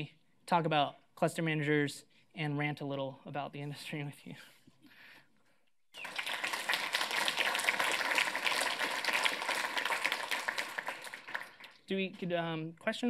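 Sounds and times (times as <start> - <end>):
audience applauding: 6.0 - 11.9.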